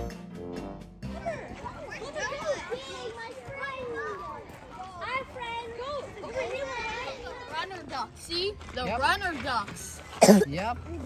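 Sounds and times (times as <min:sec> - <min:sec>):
children talking and calling: 0:01.0 - 0:11.0.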